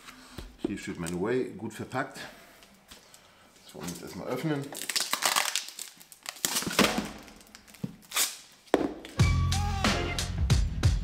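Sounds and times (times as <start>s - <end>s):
plastic crinkling and clicking: 3.8s - 8.4s
music with strong bass: 9.2s - 11.0s.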